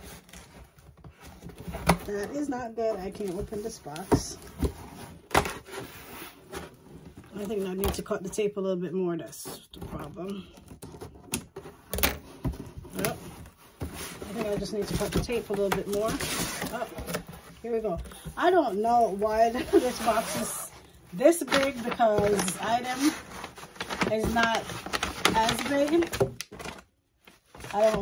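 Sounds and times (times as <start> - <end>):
cardboard rubbing and scraping: 10.9 - 26.7.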